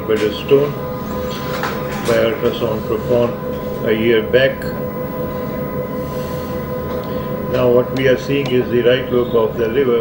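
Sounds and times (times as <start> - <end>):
mechanical hum with low rumble: 0.0 - 10.0.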